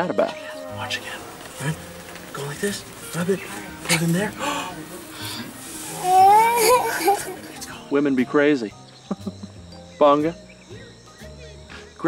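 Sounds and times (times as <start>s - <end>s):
child crying out: 5.8s - 7.4s
child laughing: 5.9s - 7.5s.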